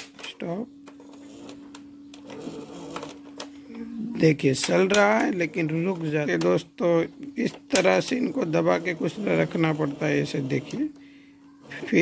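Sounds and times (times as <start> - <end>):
cassette mechanism humming: 0.0 - 12.0.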